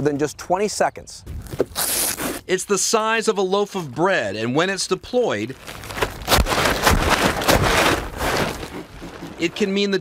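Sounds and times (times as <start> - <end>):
fabric rustling and flapping: 5.6 - 9.9.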